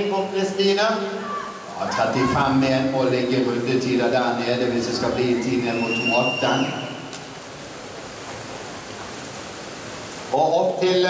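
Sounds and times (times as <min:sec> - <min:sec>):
indoor pool noise: 0:00.0 - 0:11.0.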